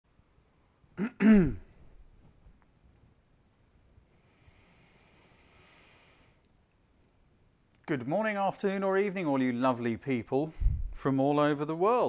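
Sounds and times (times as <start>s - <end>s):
man clearing his throat: 1.0s - 1.8s.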